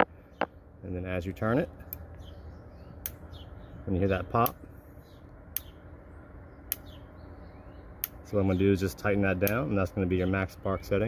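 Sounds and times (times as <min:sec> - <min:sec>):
regular sharp clicks: 0:01.8 - 0:02.2, 0:03.0 - 0:03.2, 0:05.2 - 0:05.8, 0:06.6 - 0:07.0, 0:08.0 - 0:08.2.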